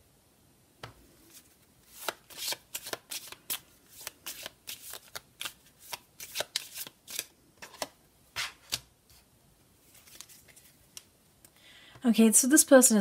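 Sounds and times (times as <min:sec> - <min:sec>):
cards being shuffled: 0:01.2 - 0:09.2, 0:09.9 - 0:11.1.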